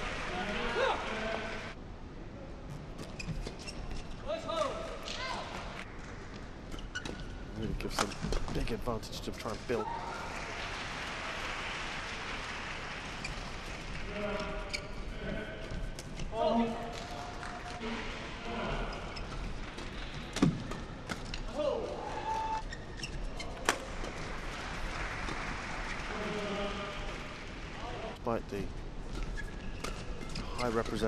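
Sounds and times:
arena background noise: 0.0 - 31.0.

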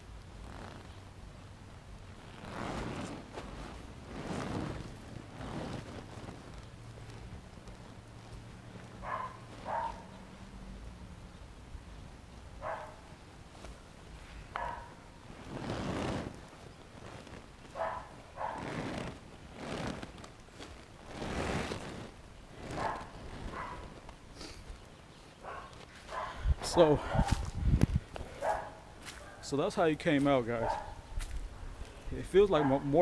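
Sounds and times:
vinyl scraping over plastic tarp: 2.1 - 10.4, 13.5 - 24.6
dog barking: 9.0 - 10.1, 12.6 - 13.0, 14.6 - 15.0, 17.8 - 18.6, 22.8 - 23.9, 25.4 - 26.4, 28.4 - 29.5, 30.6 - 31.0, 32.5 - 32.9.

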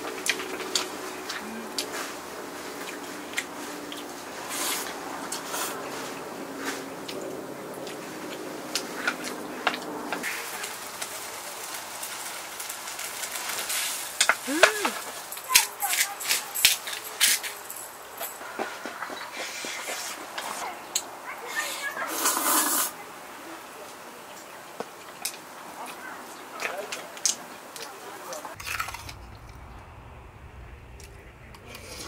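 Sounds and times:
slurping noodles: 22.1 - 22.9.

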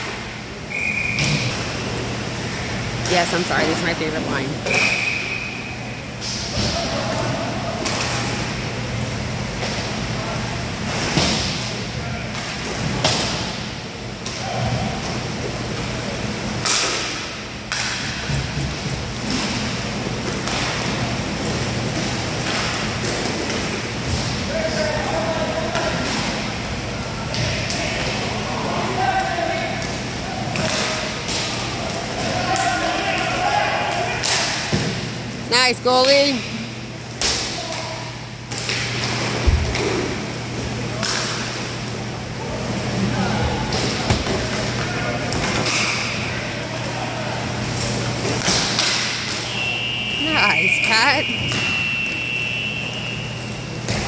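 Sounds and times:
puck striking boards: 16.6 - 21.0
players shouting: 24.4 - 34.7.

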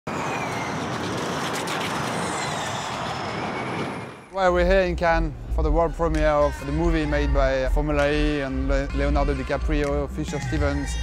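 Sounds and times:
electric race car whine: 0.1 - 4.4.

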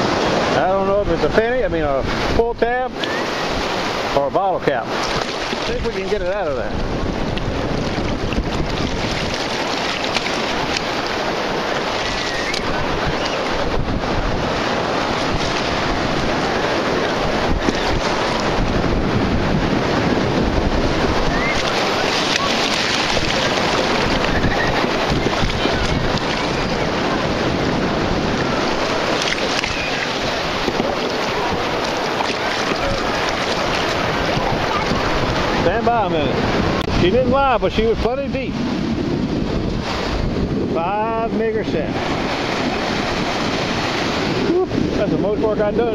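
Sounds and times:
surf washing on shoreline: 0.0 - 45.9
wind buffeting microphone: 0.0 - 45.9.

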